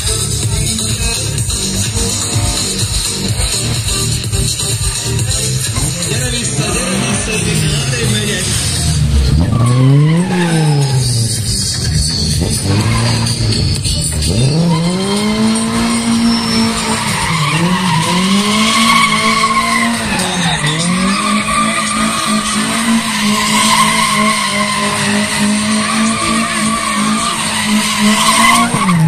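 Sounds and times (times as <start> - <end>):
car engine revving: 0.0 - 29.0
tyres squealing: 0.1 - 29.0.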